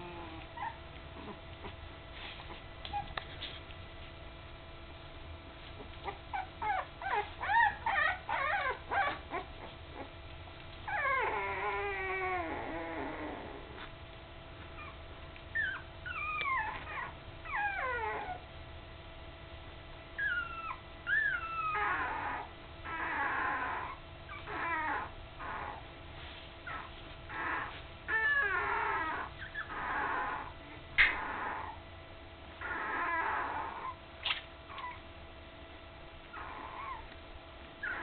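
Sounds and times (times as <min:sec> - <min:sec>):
puppies whimpering: 0:00.0 - 0:01.8, 0:05.8 - 0:10.2, 0:10.8 - 0:13.8, 0:14.7 - 0:18.4, 0:20.2 - 0:25.9, 0:26.6 - 0:31.8, 0:32.6 - 0:34.0, 0:36.3 - 0:37.2, 0:37.8 - 0:38.0.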